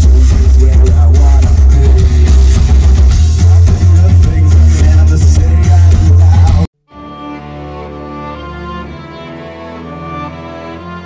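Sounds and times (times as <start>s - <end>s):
drums: 0.0s - 6.7s
heavy bass: 0.0s - 6.7s
loud rock music: 0.0s - 6.7s.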